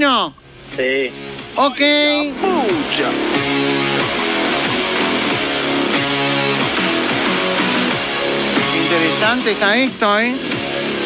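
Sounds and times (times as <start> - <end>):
instrumental guitar music: 0.4 - 11.0.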